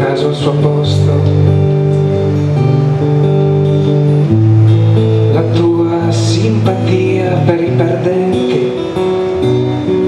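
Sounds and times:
acoustic guitar chords: 0.0s - 10.0s.

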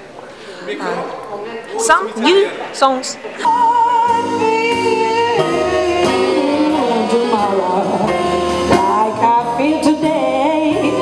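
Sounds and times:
jazz band playing: 3.4s - 11.0s
woman singing jazz: 3.4s - 11.0s.

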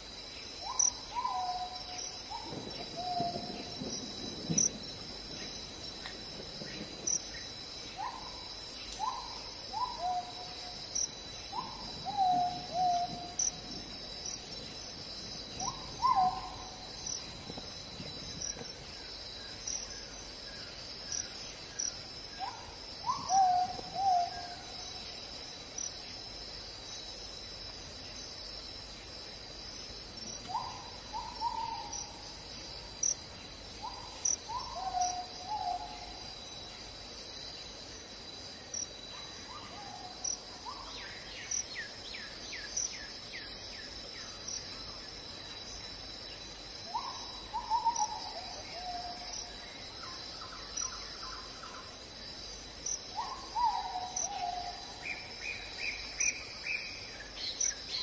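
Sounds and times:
high-pitched insect chorus: 0.0s - 58.0s.

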